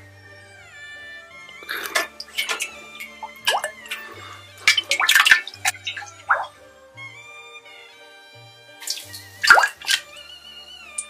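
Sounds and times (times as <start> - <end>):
background music: 0.0 - 11.0
liquid splashing and dripping: 1.7 - 6.6, 8.8 - 10.2.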